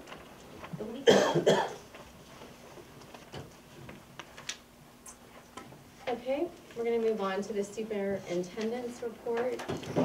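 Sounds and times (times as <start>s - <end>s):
man coughing: 1.0s - 1.8s.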